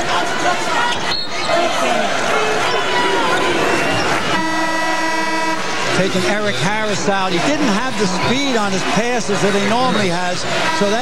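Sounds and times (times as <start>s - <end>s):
crowd noise: 0.0s - 11.0s
arena horn blast: 4.2s - 11.0s.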